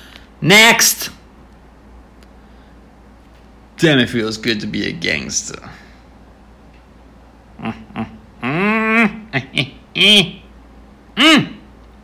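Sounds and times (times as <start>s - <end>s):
man's wordless vocal sounds: 7.6s - 10.5s.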